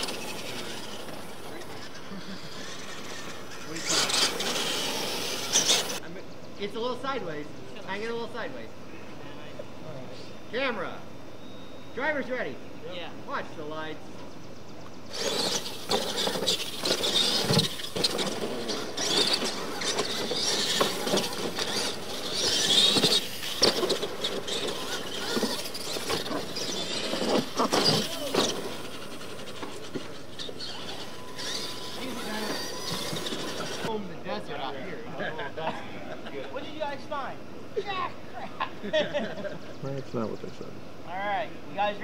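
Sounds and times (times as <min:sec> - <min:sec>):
motor and drivetrain whine: 0:00.0 - 0:06.0, 0:14.8 - 0:34.0
tyres scrabbling on dirt: 0:00.0 - 0:06.0, 0:15.0 - 0:34.0.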